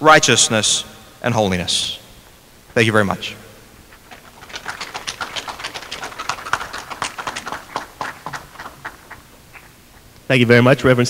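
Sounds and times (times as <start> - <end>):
audience applauding: 4.0 - 9.3.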